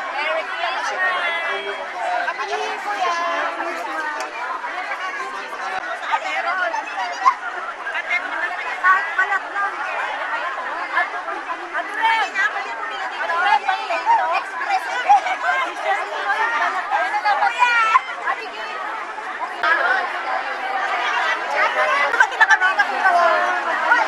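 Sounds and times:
crowd chatting: 0.0s - 24.0s.

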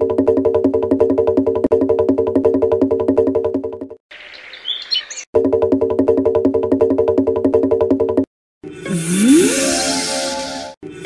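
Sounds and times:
birds chirping: 4.1s - 5.3s.

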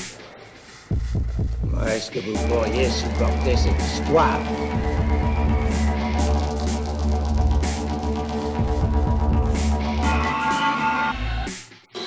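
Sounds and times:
electronic dance music: 0.0s - 12.0s
deep bass throb: 0.9s - 10.0s
rising sweep: 2.3s - 10.2s.

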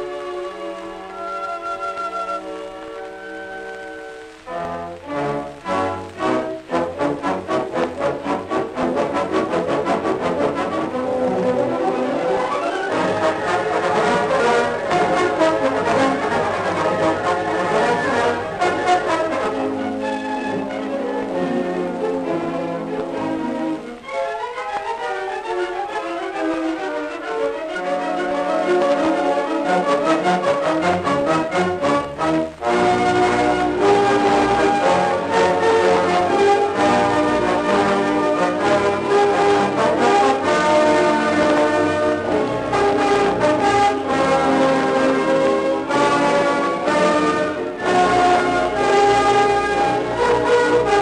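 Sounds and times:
music from a record: 0.0s - 51.0s.

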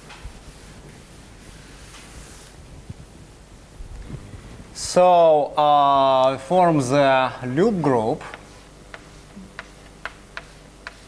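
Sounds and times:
chalk clicking on blackboard: 8.3s - 11.0s.

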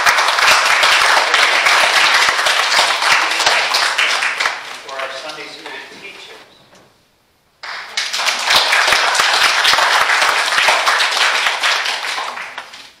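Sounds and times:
congregation clapping: 0.0s - 6.4s, 7.6s - 13.0s.

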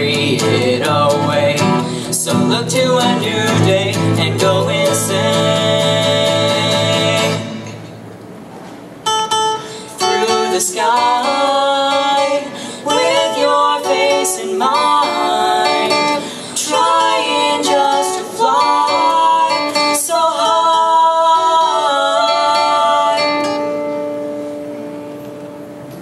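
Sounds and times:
man and woman singing duet: 0.0s - 7.7s, 9.8s - 24.0s
strummed acoustic guitar: 0.0s - 8.1s, 9.0s - 26.0s.

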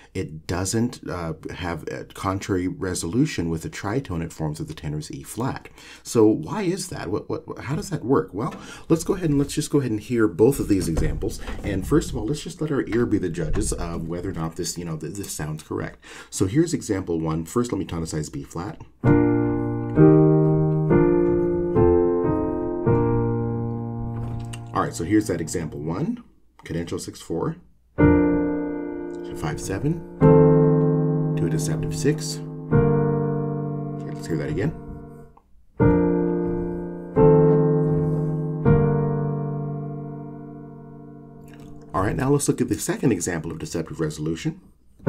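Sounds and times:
piano block chords: 7.7s - 9.6s, 19.0s - 26.2s, 28.0s - 42.4s.

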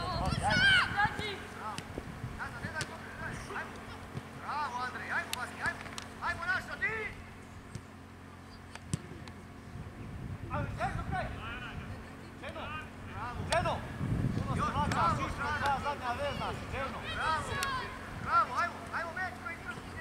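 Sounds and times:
young footballers shouting: 0.0s - 1.8s, 14.5s - 20.0s.

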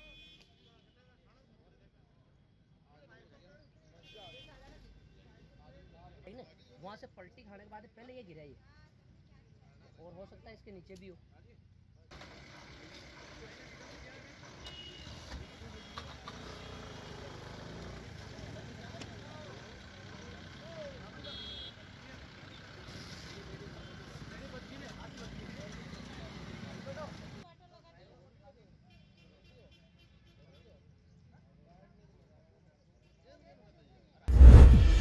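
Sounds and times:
passing vehicles: 12.1s - 27.4s.

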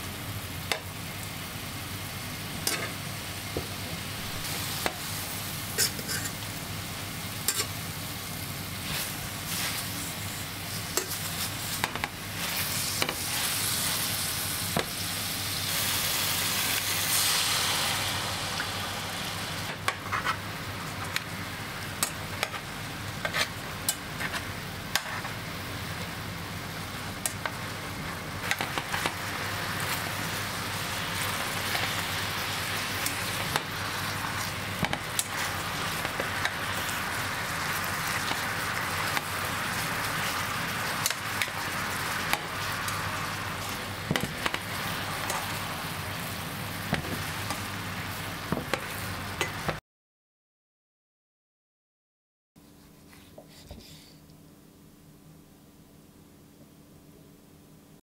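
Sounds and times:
food sizzling in oil: 0.0s - 49.8s
metal tongs clicking on pan: 7.5s - 7.7s.

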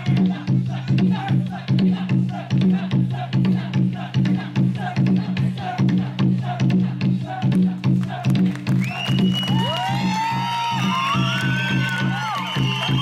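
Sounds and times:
high whoops and whistles: 8.7s - 13.0s.

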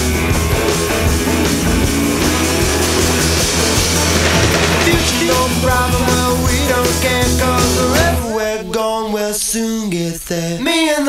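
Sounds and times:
steady bass line: 0.0s - 8.2s
instrumental rock band: 0.0s - 8.4s.

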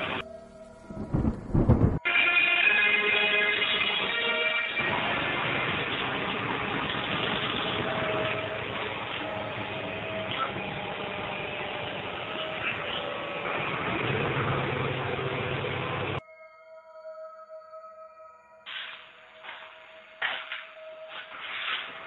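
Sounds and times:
faint sustained musical tones: 0.0s - 22.0s.

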